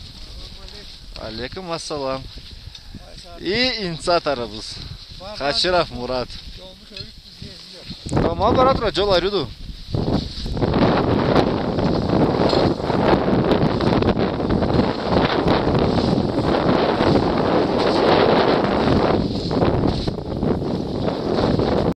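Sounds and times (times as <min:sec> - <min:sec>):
wind buffeting microphone: 0:00.0 - 0:22.0.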